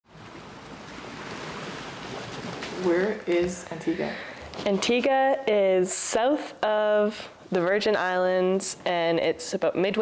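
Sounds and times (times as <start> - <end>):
waves rushing: 0.1 - 4.4.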